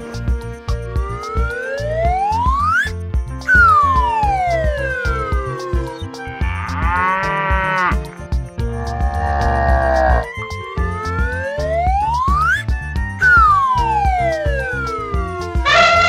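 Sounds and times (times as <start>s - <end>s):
children's music with a beat: 0.0s - 16.0s
cattle mooing: 6.3s - 8.1s, 8.7s - 10.3s.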